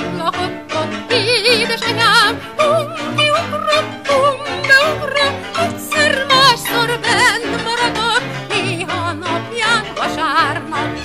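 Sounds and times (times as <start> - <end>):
instrumental accompaniment: 0.0 - 11.0
woman singing with vibrato: 0.0 - 11.0.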